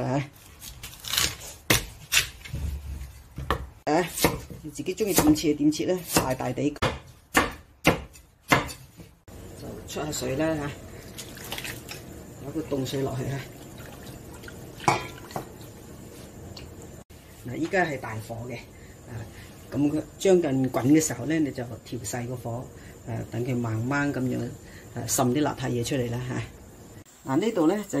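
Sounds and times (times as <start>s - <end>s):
cleaver chopping on wooden board: 3.4s - 5.4s, 6.0s - 9.1s
water splashing and dripping: 11.0s - 12.2s, 13.2s - 15.8s.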